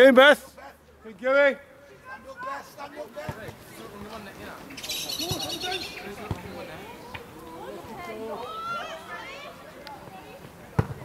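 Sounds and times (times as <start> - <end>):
faint shouts of players and spectators: 0.0 - 11.0.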